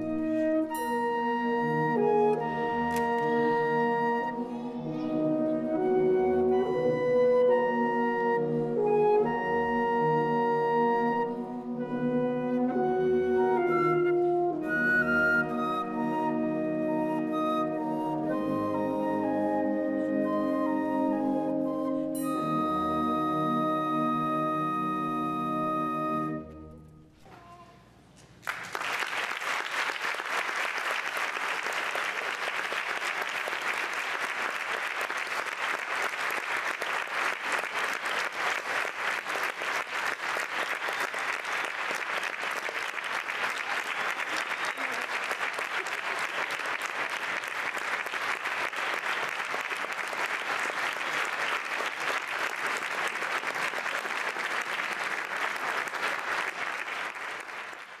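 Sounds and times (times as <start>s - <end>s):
audience applauding: 28.4s - 58.0s.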